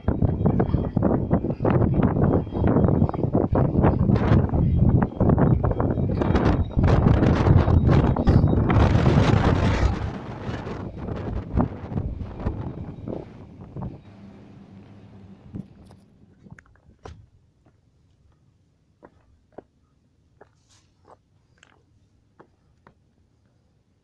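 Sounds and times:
wind buffeting microphone: 0.0s - 17.3s.

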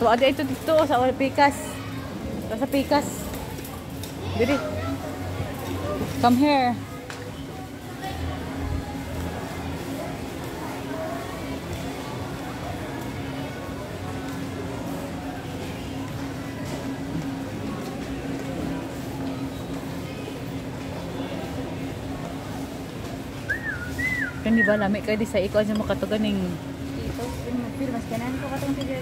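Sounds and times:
faint store music: 0.0s - 29.0s
indistinct shoppers chatter: 0.0s - 29.0s.

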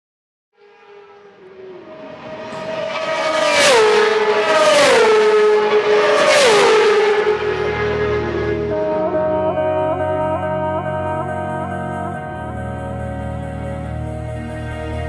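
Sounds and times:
race vehicles passing at speed: 0.6s - 9.3s
music with low brass: 7.2s - 15.0s.

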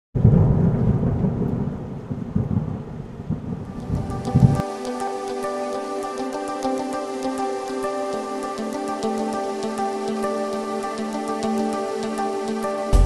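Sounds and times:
thunder rumbling: 0.2s - 4.6s
steady rain: 0.2s - 4.7s
music with ticking beat: 3.8s - 7.9s, 8.6s - 13.0s.

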